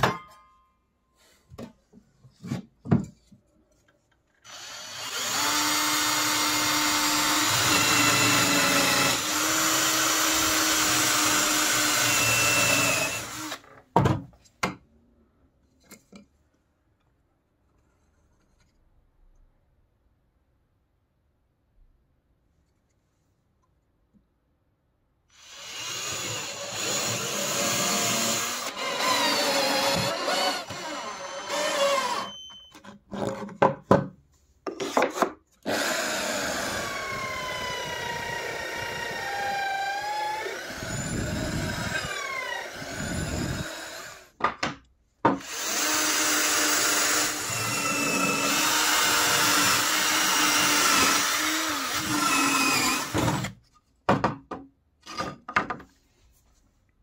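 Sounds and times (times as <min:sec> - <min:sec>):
electric drill boring into wood: 0:04.5 - 0:13.7, 0:25.4 - 0:32.4, 0:35.6 - 0:44.3, 0:45.4 - 0:53.5.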